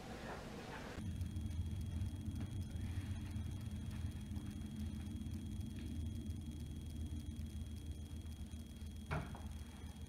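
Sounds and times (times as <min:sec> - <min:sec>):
low hum: 0:00.6 - 0:10.0.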